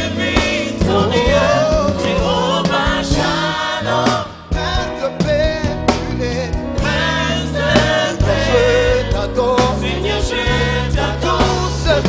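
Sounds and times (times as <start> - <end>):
gospel choir singing: 0.0 - 12.0
steady bass notes: 0.0 - 12.0
drum hits: 0.4 - 7.0.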